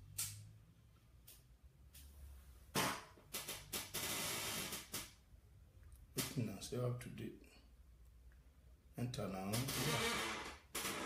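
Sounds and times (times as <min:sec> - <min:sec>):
loud even static: 0:02.8 - 0:05.2, 0:09.5 - 0:11.0.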